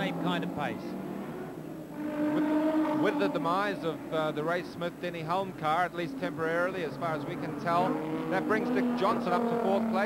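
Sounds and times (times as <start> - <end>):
racing car engine droning: 0.1 - 10.0.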